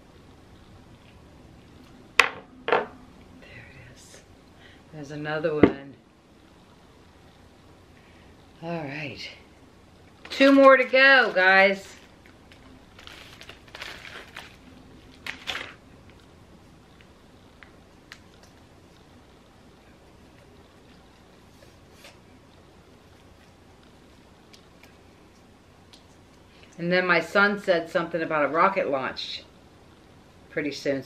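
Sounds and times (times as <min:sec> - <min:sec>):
rustling and crinkling materials: 0:10.1 - 0:16.4.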